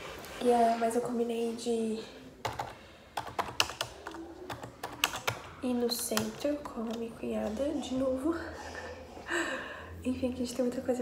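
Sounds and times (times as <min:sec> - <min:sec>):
computer keyboard typing: 0:02.4 - 0:07.2.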